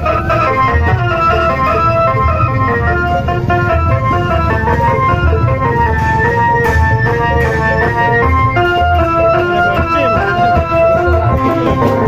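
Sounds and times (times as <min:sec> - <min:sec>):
loud music through horn loudspeakers: 0:00.0 - 0:12.0.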